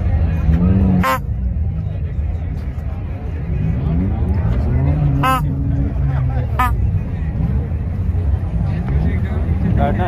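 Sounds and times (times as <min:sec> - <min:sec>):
crowd chatter: 0:00.0 - 0:10.0
bulb horn honks: 0:00.8 - 0:01.5, 0:05.1 - 0:05.6, 0:06.6 - 0:06.9.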